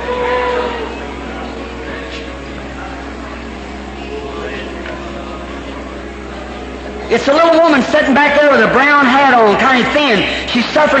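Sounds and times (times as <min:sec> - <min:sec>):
faint scattered voices: 0:00.0 - 0:07.7
electrical hum and tape hiss: 0:00.0 - 0:11.0.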